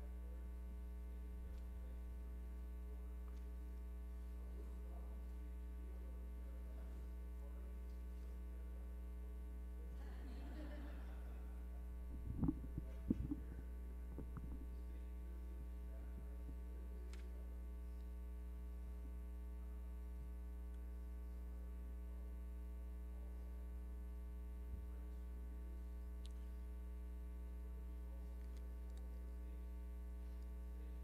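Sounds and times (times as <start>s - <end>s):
electrical mains hum: 0.0s - 31.0s
low thumps: 12.0s - 14.6s.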